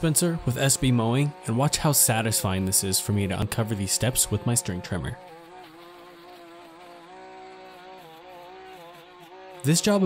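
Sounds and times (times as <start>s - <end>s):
string trimmer engine buzzing: 0.0s - 10.0s.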